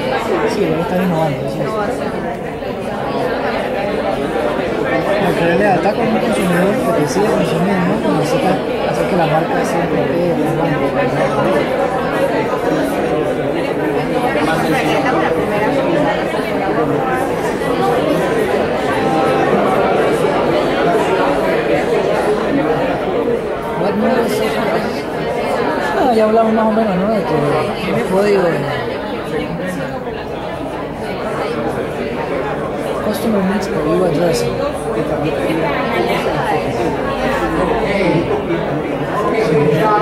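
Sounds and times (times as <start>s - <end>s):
hubbub of overlapping conversations: 0.0s - 40.0s.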